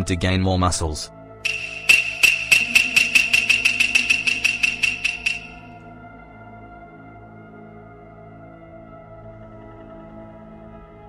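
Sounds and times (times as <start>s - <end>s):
music drone: 1.5s - 5.8s
sharp ringing ticks: 1.5s - 5.8s.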